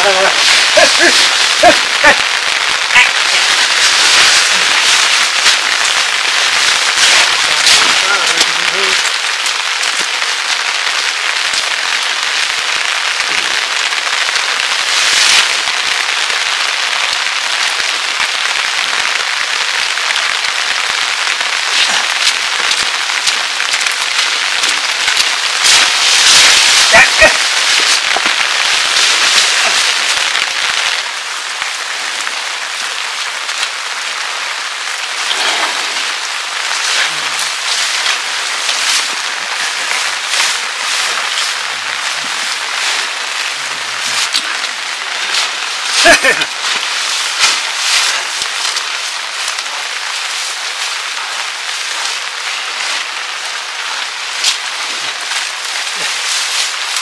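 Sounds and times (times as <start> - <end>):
leafy branches rustling: 0.0 - 16.4, 20.2 - 57.0
steady rain: 0.0 - 57.0.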